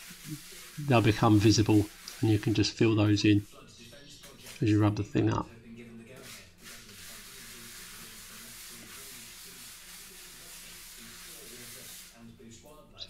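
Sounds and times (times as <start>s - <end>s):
float scratching on render: 0.0s - 4.8s, 6.1s - 12.8s.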